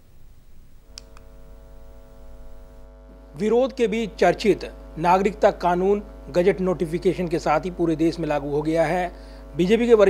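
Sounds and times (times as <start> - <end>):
electrical mains hum: 0.0 - 10.0
short click: 0.9 - 1.3.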